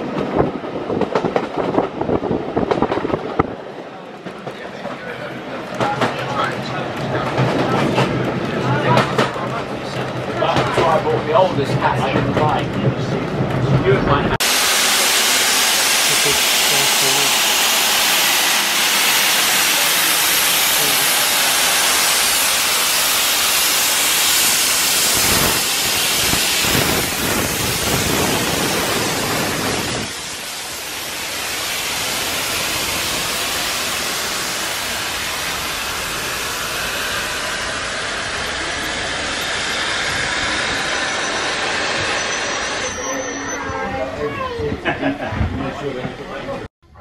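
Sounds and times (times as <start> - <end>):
steam locomotive hissing: 14.3 - 45.3.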